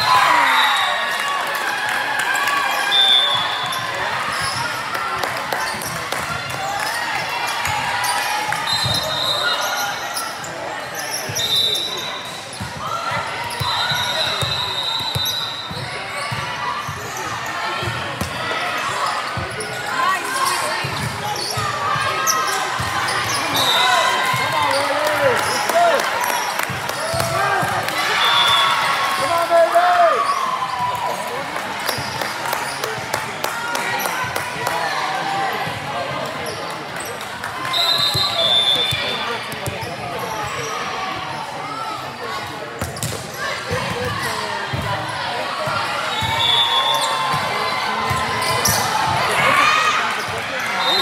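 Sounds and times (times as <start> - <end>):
chatter echoing in gymnasium: 0.0 - 51.0
referee whistle blasts: 2.9 - 3.8, 11.3 - 12.2, 13.5 - 15.8, 37.7 - 39.2, 46.0 - 47.3, 50.8 - 51.0.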